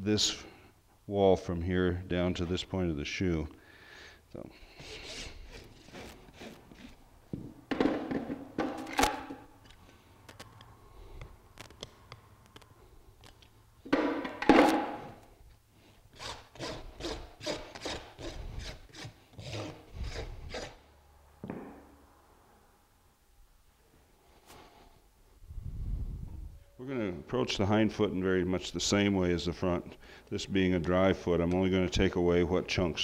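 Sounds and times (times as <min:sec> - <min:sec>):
rasp filing hoof: 0:04.7 - 0:07.0, 0:16.1 - 0:20.8.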